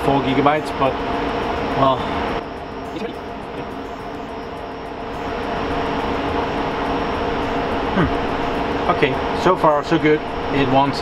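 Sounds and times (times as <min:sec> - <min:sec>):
server cooling fans whirring: 0:00.0 - 0:11.0.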